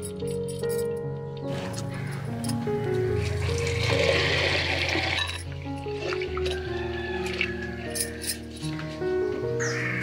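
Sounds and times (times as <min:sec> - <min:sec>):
water pouring into a pot: 0:03.3 - 0:05.4.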